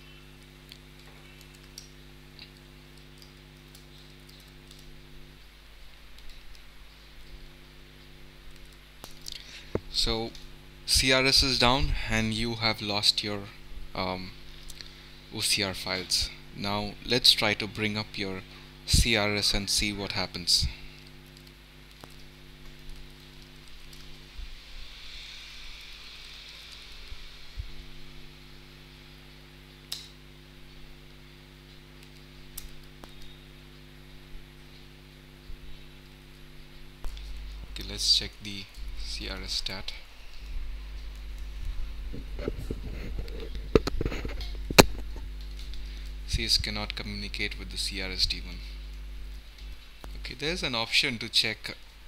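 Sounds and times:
fan hiss: 0.0 - 52.0
low electrical hum: 0.0 - 52.0.

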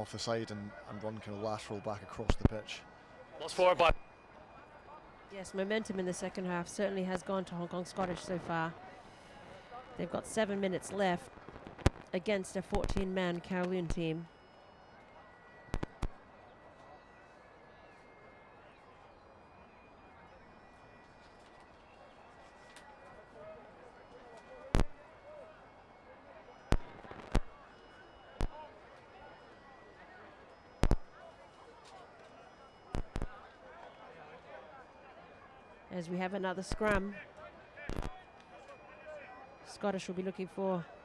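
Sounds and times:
distant players talking and shouting: 0.0 - 41.0.

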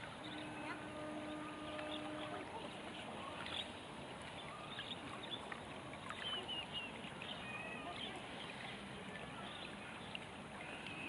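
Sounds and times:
river water murmur: 0.0 - 11.0.

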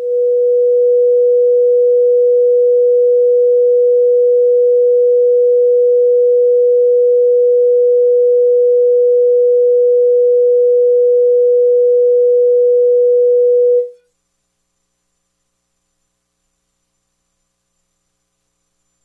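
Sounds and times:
steady pure test tone: 0.0 - 14.0.

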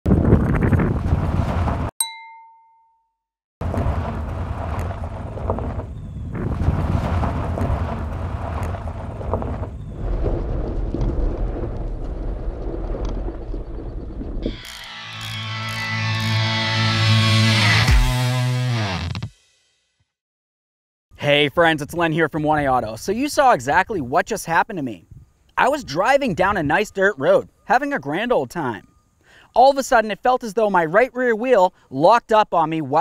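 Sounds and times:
vehicle rumbling on dirt road: 0.1 - 1.9, 3.6 - 15.4
ringing ding: 2.0 - 3.2
electric guitar music: 14.5 - 19.3.

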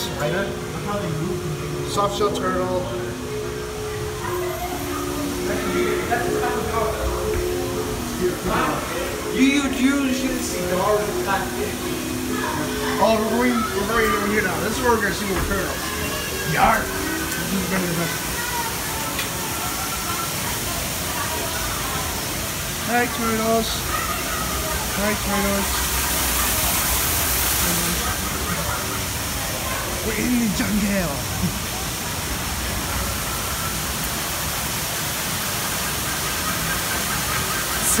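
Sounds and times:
faint voices: 0.0 - 38.0
rushing water: 0.0 - 38.0.

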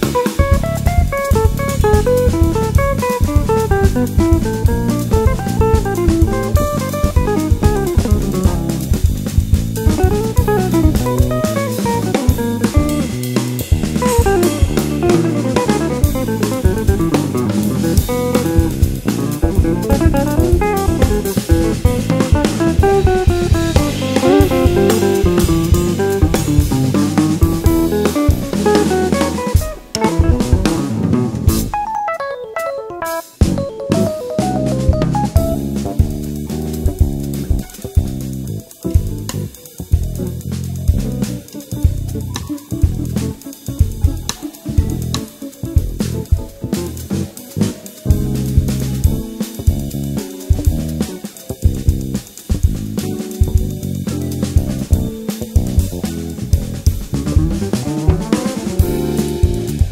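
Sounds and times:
electric bass: 0.0 - 31.8, 33.4 - 59.9
drum kit samba groove: 0.0 - 59.9
electric guitar melody: 0.0 - 59.9.

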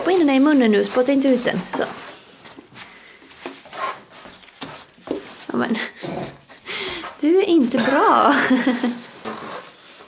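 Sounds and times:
rustling on straw: 0.0 - 5.9.

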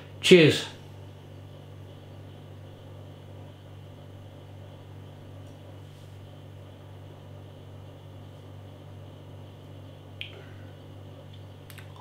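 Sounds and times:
low electrical hum: 0.0 - 12.0
faint small clicks: 11.3 - 12.0.

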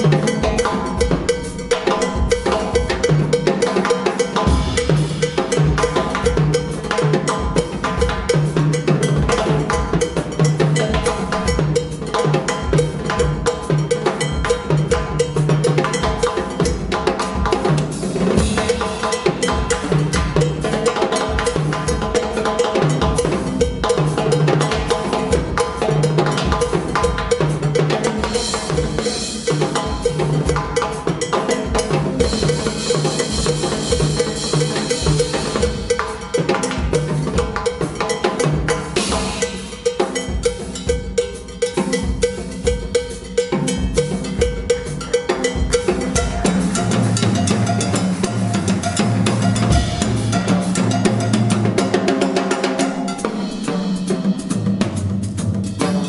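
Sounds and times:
congas playing: 0.0 - 56.0
cymbal ringing: 0.0 - 56.0
drum kit groove: 0.0 - 56.0.

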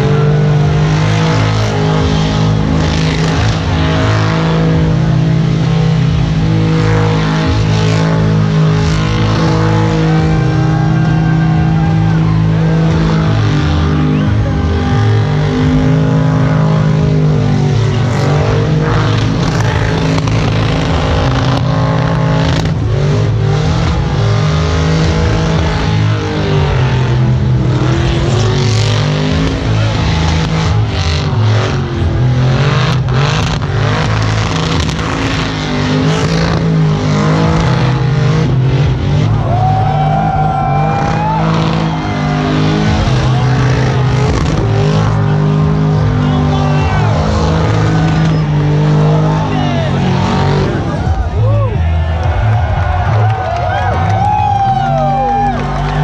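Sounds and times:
car engine at high revs: 0.0 - 56.0.

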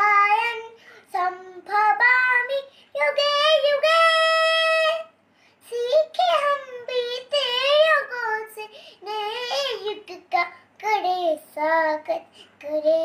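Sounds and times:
girl singing: 0.0 - 13.0.

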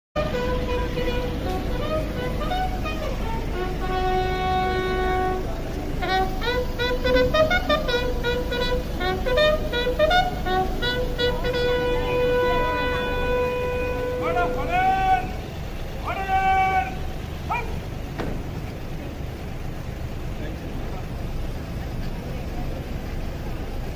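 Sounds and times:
wind instruments playing slow tune: 0.2 - 17.9.

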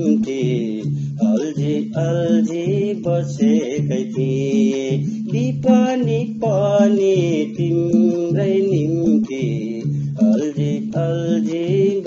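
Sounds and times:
folk song music: 0.0 - 12.0.

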